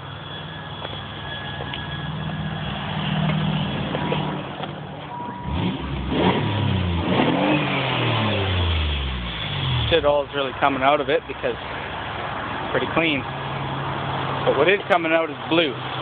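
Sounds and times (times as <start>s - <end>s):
car engine idling and revving: 0.0s - 16.0s.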